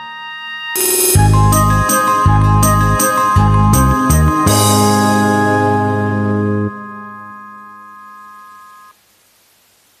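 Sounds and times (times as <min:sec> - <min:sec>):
held chord of backing track: 0:00.7 - 0:08.9
faint hiss: 0:08.9 - 0:10.0.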